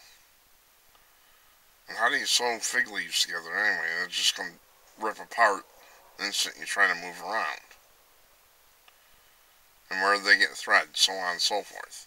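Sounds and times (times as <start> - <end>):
faint steady hiss: 0.0 - 12.0
faint click: 0.9 - 1.1, 8.8 - 9.0
man speaking: 1.8 - 7.8, 9.8 - 12.0.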